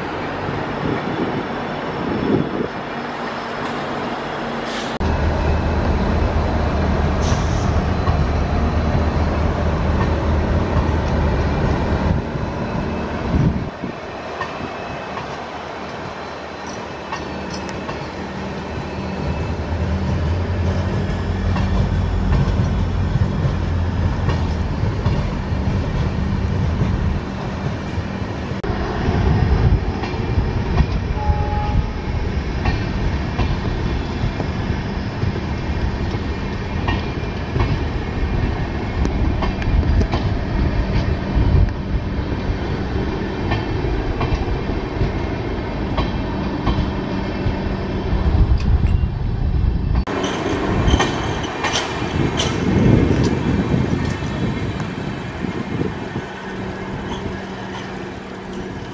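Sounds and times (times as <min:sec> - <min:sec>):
train rolling past: 0:00.0 - 0:58.9
wheels clicking over rail joints: 0:50.0 - 0:58.9.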